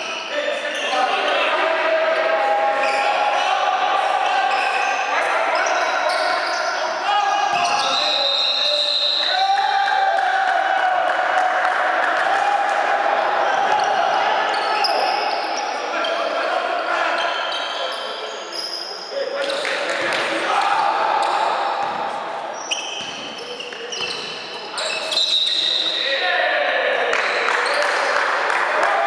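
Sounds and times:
sneakers squeaking: 0.0s - 1.3s, 2.8s - 9.7s, 13.4s - 26.2s, 27.6s - 28.1s
players calling: 0.0s - 29.0s.

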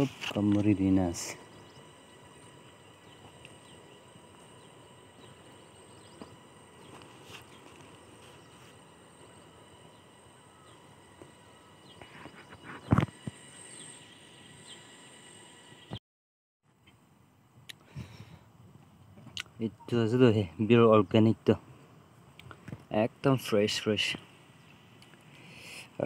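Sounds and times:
high insect drone: 0.0s - 16.0s, 19.6s - 26.0s.

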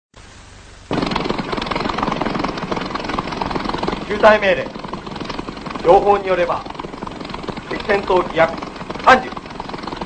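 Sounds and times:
film soundtrack hiss: 0.2s - 10.0s
propeller aircraft engines: 0.9s - 10.0s.

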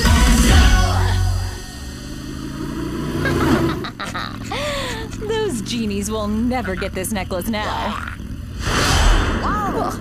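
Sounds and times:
cartoon sound effects: 7.6s - 8.2s.

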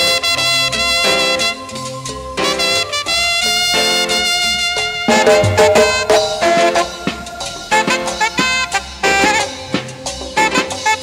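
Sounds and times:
instrumental worship band music: 0.0s - 11.0s.

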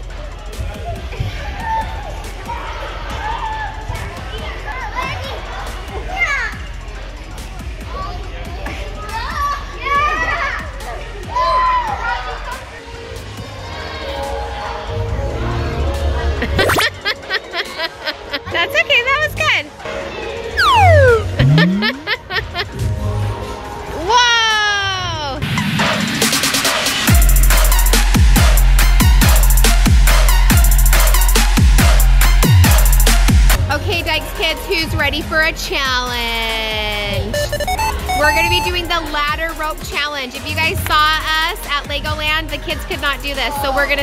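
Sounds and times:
music: 0.0s - 44.0s
cartoon whistle sliding down: 20.6s - 22.0s
low tone gliding up: 20.6s - 22.0s.

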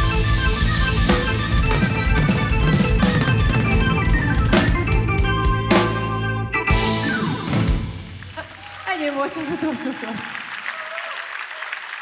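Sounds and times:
live rock band playing: 0.0s - 8.4s.

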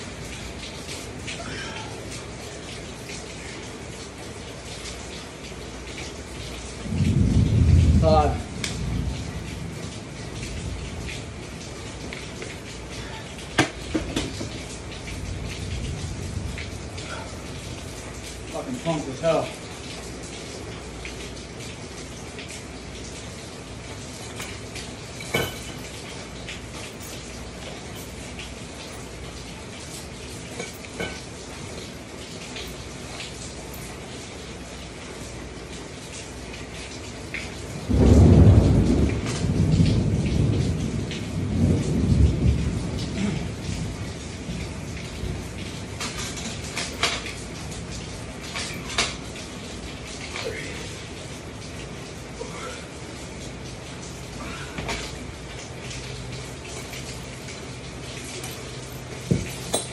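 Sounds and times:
steady rain: 0.0s - 59.9s
thunder rumbling: 6.8s - 12.0s, 14.0s - 18.4s, 37.8s - 49.2s.

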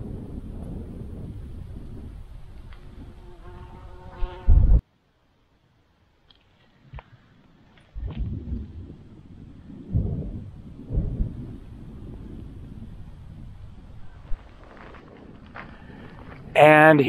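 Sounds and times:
wind buffeting microphone: 0.0s - 4.8s, 6.9s - 17.0s.

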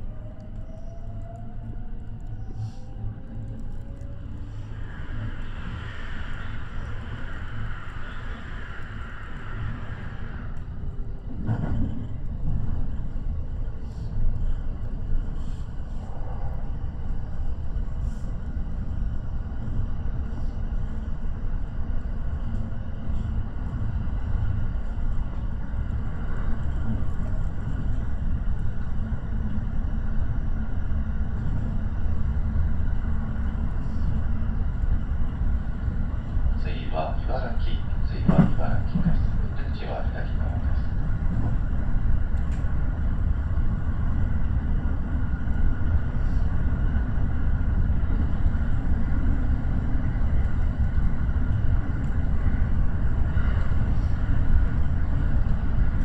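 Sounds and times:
high-pitched train hum: 0.0s - 56.0s
train wheels rumbling on rails: 0.0s - 56.0s.

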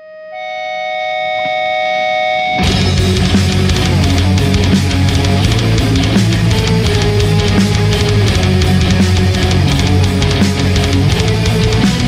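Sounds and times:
high-pitched guitar tones: 0.0s - 12.0s
death metal band playing: 1.2s - 12.0s.

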